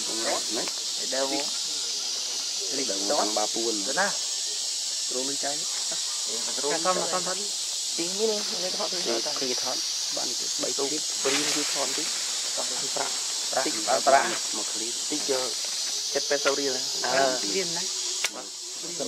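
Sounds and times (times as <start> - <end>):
high-pitched insect drone: 0.0 - 19.0
person talking: 16.4 - 17.8.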